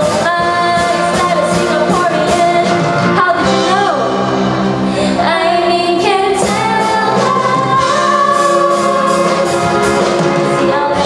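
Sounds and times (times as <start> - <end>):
woman singing into a microphone: 0.0 - 4.1, 5.0 - 9.6, 10.4 - 11.0
band with electric guitar and drums: 0.0 - 11.0.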